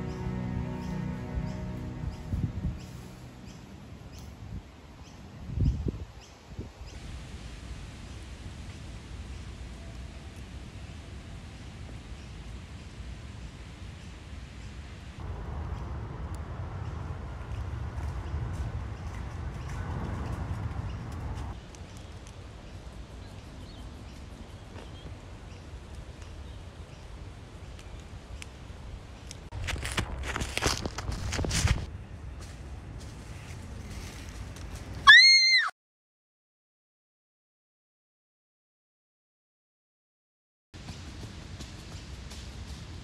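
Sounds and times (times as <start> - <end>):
low wind rumble on microphone: 0.0 - 35.0
footsteps crunching through dry leaves: 29.5 - 35.0.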